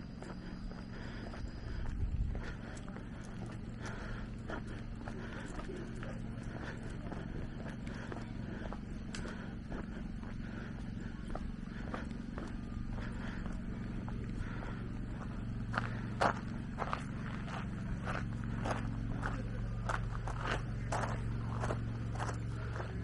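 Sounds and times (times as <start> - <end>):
steady low hum: 0.0 - 23.0
footsteps on gravel: 0.2 - 23.0.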